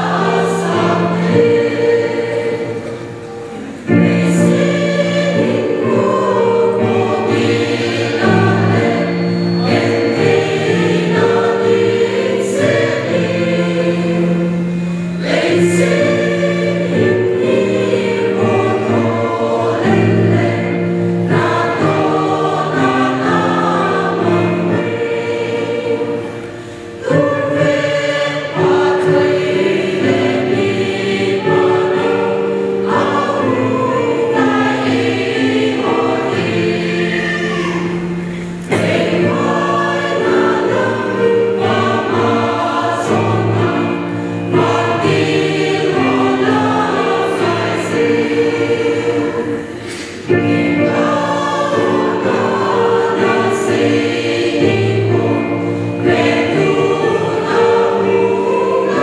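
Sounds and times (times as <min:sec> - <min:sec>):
mixed choir singing a hymn: 0:00.0 - 0:59.0.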